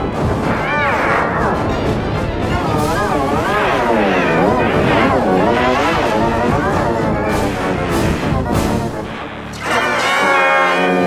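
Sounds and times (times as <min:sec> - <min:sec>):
distorted swooping wailing tone: 0:00.2 - 0:11.0.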